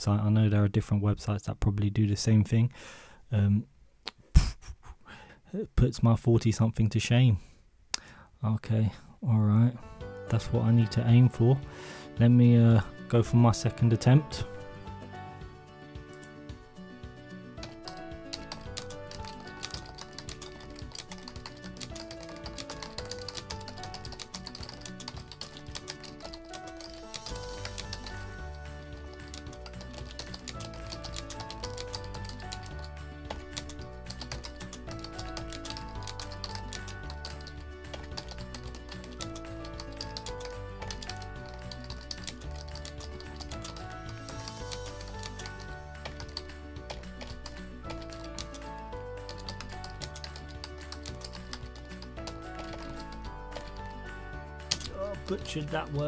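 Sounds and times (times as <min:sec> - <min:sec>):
background music: 0:09.2 - 0:56.0
rapid typing on keyboard: 0:17.6 - 0:56.0.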